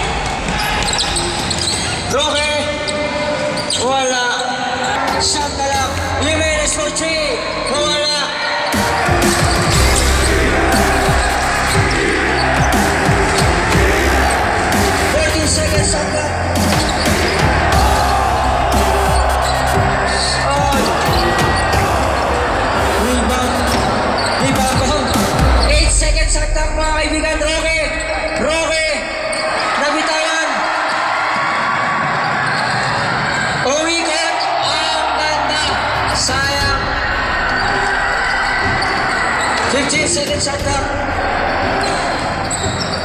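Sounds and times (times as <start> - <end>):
hubbub of voices: 0.0 - 43.0
music with low bass: 8.8 - 28.5.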